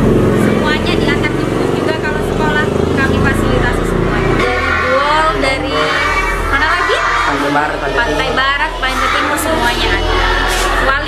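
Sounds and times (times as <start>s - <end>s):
woman talking: 0.4s - 7.2s, 8.0s - 11.0s.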